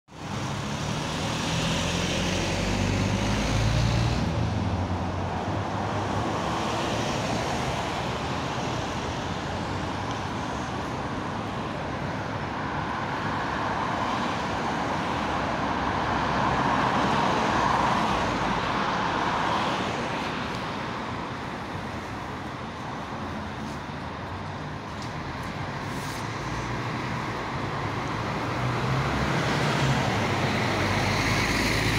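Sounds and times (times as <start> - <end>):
steady traffic noise: 0.0 - 31.9
city bus driving: 0.1 - 31.9.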